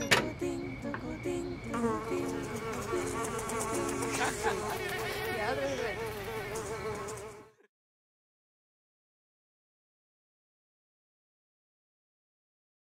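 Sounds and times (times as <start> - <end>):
fly buzzing: 0.4 - 7.7.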